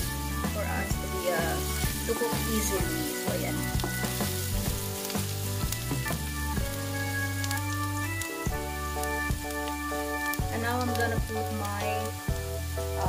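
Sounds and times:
background music with strong bass: 0.0s - 13.0s
onions sizzling in hot oil: 0.0s - 13.0s
small crackles: 0.0s - 13.0s.

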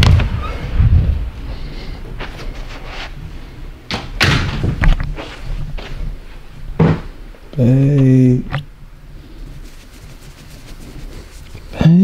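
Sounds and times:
dull thumps and knocks: 6.8s - 7.1s.

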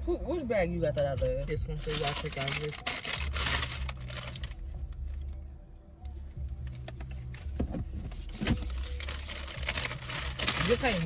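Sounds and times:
plastic bag rustling: 1.8s - 4.6s, 8.2s - 11.0s.

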